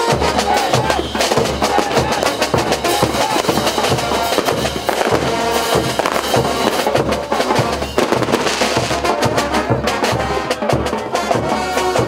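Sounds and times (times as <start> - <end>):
festival band with drums: 0.0 - 12.0.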